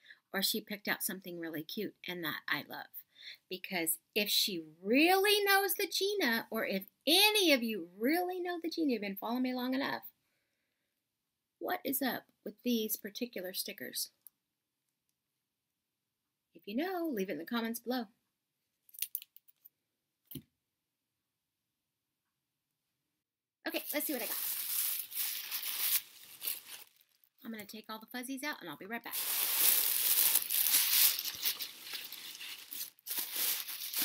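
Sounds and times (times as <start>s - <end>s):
plastic sleeve crinkling and clicking: 24.0s - 27.3s, 29.1s - 34.0s.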